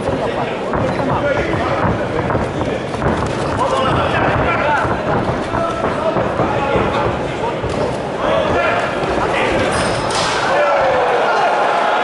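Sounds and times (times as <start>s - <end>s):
dull thuds of blows: 0.0s - 10.3s
crowd noise: 0.0s - 12.0s.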